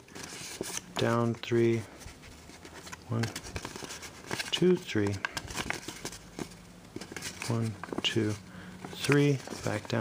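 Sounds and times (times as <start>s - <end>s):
paper rustling and crackling: 0.0s - 10.0s.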